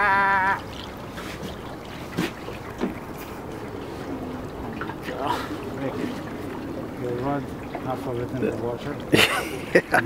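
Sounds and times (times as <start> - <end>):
river water: 0.0 - 10.0
wind: 0.0 - 10.0.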